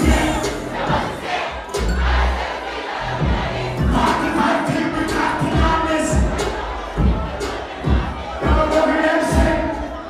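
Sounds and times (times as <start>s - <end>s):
crowd shouting and singing along: 0.0s - 10.0s
loud dancehall music: 0.0s - 10.0s.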